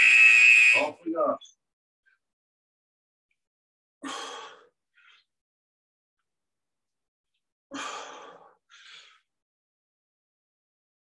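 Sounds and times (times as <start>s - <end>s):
man breathing out forcefully: 7.7s - 9.3s.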